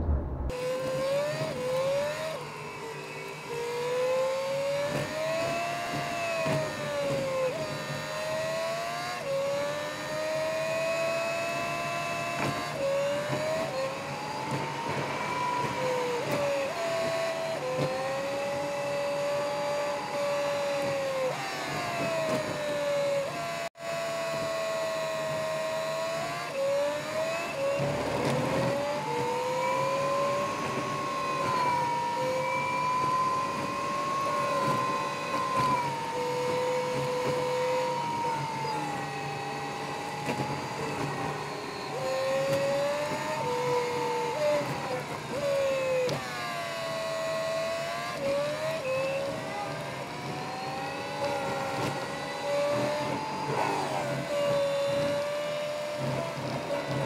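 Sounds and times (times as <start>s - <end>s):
low running rumble: 0.0s - 0.6s
truck drivetrain whine: 0.0s - 57.0s.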